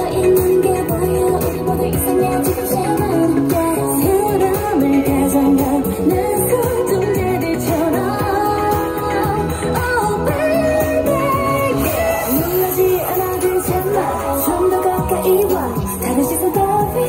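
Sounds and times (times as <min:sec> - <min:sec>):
pop song with sung vocals: 0:00.0 - 0:17.0.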